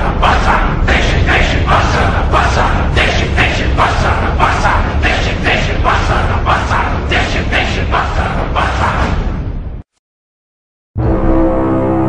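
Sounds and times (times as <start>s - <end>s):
steady low rumble: 0.0s - 9.7s.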